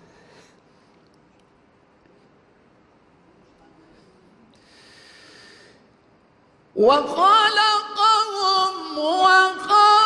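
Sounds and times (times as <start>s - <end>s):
person breathing in: 4.6s - 5.9s.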